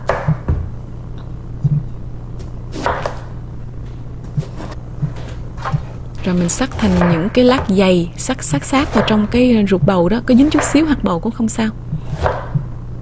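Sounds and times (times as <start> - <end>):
steady low hum: 0.0 - 13.0
knife cutting on cutting board: 4.3 - 7.8.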